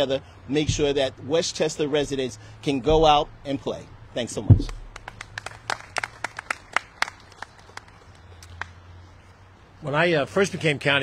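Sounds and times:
scattered hand claps: 0:04.6 - 0:08.8.

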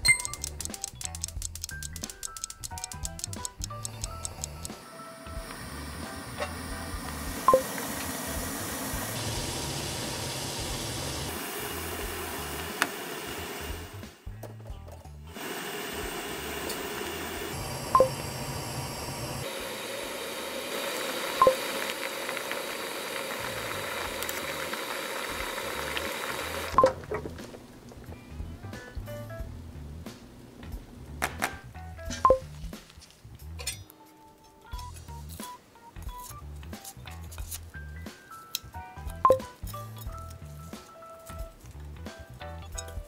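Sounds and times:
background music: 0:00.0 - 0:09.2, 0:26.6 - 0:43.0
water boiling in a pot: 0:05.1 - 0:14.1, 0:15.3 - 0:28.1.

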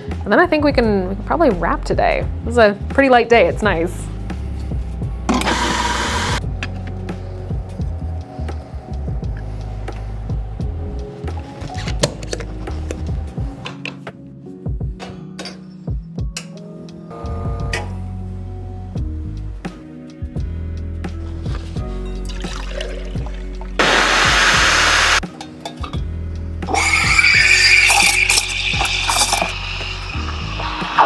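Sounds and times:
background music: 0:00.0 - 0:31.0
burst of hiss: 0:23.8 - 0:25.2, 0:26.8 - 0:31.0.

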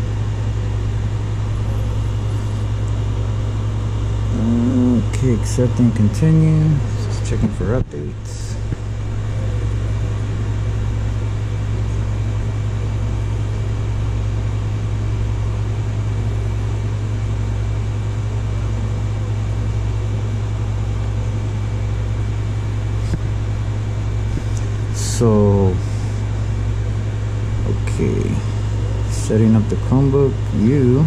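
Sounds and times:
low mechanical hum: 0:00.0 - 0:31.0.

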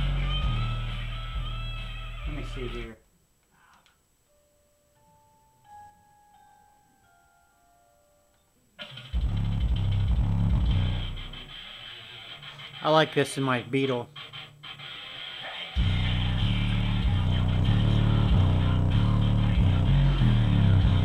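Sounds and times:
music with heavy bass: 0:00.0 - 0:02.8, 0:08.8 - 0:12.8, 0:15.7 - 0:21.0.

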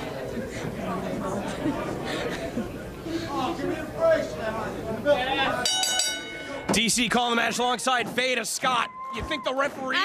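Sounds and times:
ring bell struck: 0:05.6 - 0:06.7.

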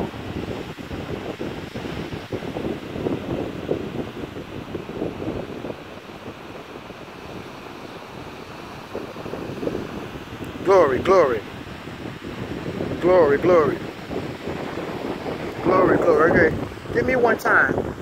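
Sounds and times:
ocean surf washing onto beach: 0:00.0 - 0:18.0
wind buffeting microphone: 0:00.0 - 0:18.0.

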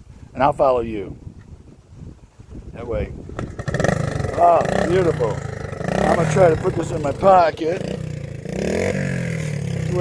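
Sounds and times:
motorcycle engine revving: 0:03.2 - 0:10.0.

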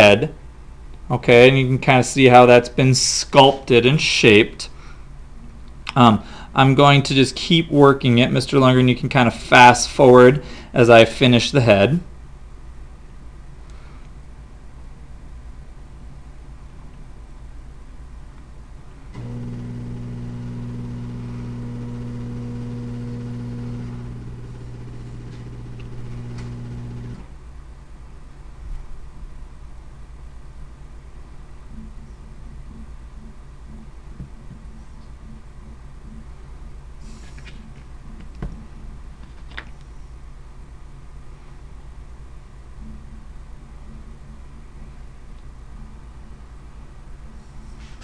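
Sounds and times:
faint background hum: 0:00.0 - 0:48.0
steady low machine hum: 0:00.0 - 0:48.0.

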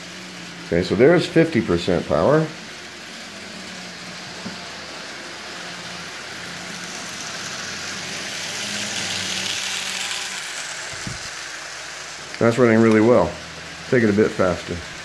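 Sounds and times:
model rail car motor whirring: 0:00.0 - 0:15.0.

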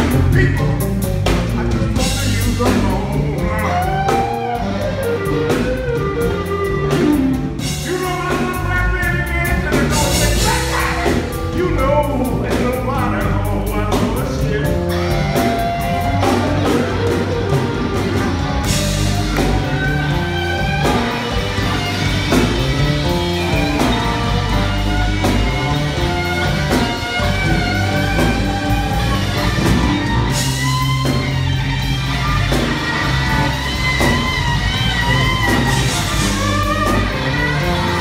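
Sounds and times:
electric guitar lead lines: 0:00.0 - 0:38.0
keyboard bass and drums: 0:00.0 - 0:38.0.

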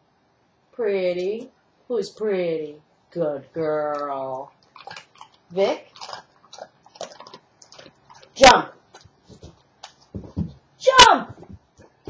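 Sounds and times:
dog crunching a biscuit: 0:04.5 - 0:10.2.

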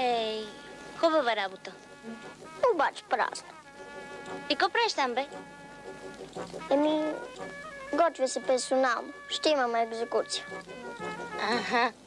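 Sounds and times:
faint steady background tone: 0:00.0 - 0:12.0.

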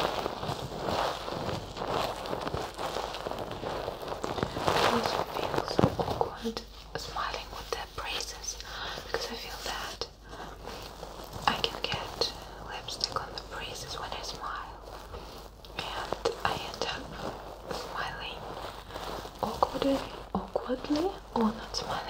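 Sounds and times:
soft whispering: 0:00.0 - 0:22.0
stuffed toy crackles and rustles: 0:00.0 - 0:22.0.

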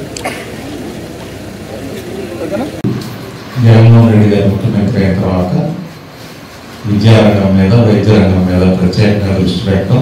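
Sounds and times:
outdoor rumble: 0:00.0 - 0:10.0
room noise: 0:00.0 - 0:10.0.

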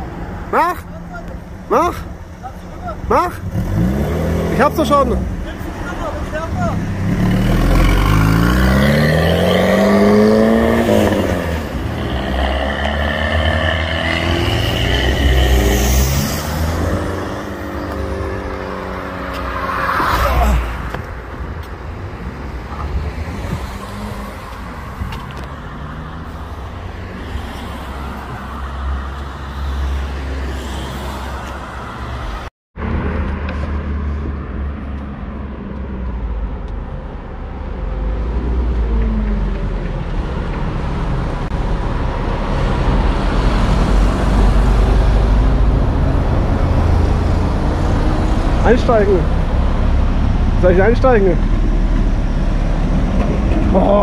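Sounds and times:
street traffic: 0:00.0 - 0:54.0
car engine revving through gears: 0:03.4 - 0:05.2, 0:06.9 - 0:20.1.

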